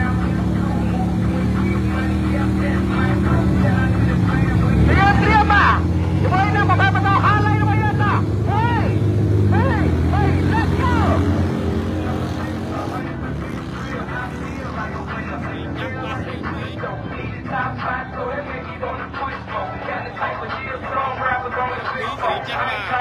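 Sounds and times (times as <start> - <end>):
motorcycle engine idling: 0.0 - 9.0, 9.6 - 19.3.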